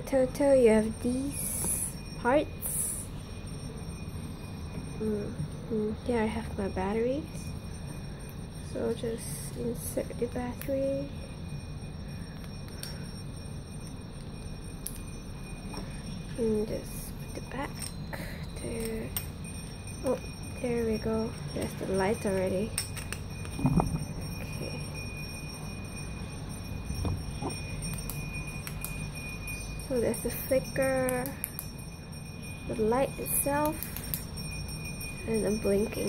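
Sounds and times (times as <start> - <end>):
low background hum: 0.0 - 36.0.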